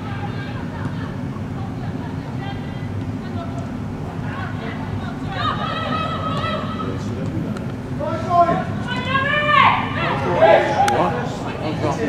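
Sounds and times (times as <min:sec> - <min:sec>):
low background noise: 0:00.0 - 0:12.0
high-pitched shouted call: 0:08.8 - 0:10.9.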